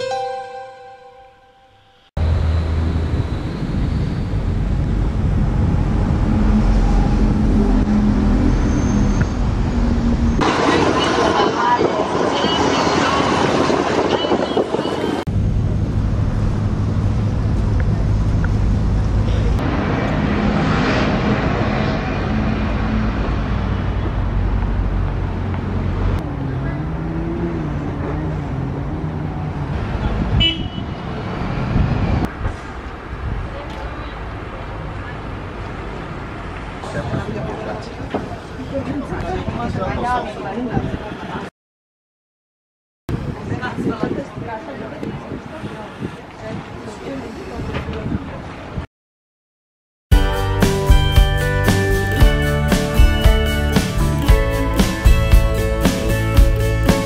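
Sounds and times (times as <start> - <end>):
traffic and engine rumble: 2.2 - 41.5, 43.1 - 48.9, 50.3 - 57.0
people talking: 10.4 - 15.2, 33.4 - 35.4, 36.8 - 41.5, 43.2 - 48.6.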